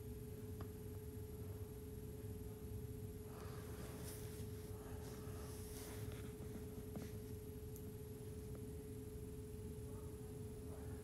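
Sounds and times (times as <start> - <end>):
low hum with constant tone: 0.0 - 11.0
soft rustling: 3.4 - 7.4.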